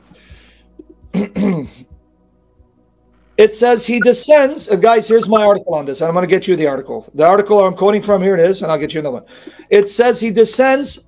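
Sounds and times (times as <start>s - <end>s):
man clearing his throat: 1.1s - 1.9s.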